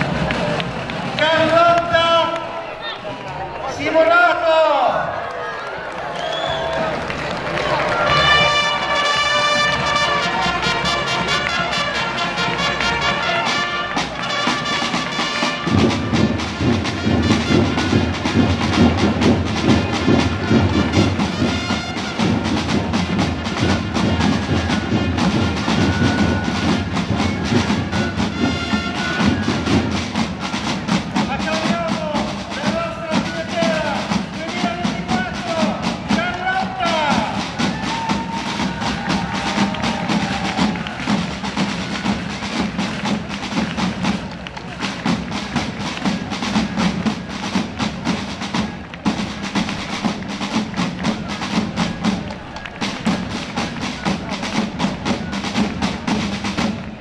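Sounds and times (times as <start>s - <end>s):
fast drum beat: 6.8s - 57.0s
voices calling out: 22.9s - 42.8s.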